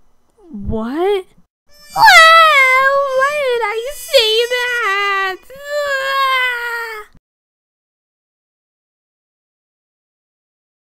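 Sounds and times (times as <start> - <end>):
high crying wail: 1.7 - 7.1.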